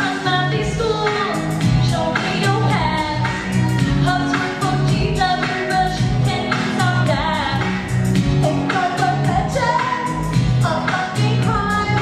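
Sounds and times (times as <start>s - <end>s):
pulsing bass line: 0.3s - 12.0s.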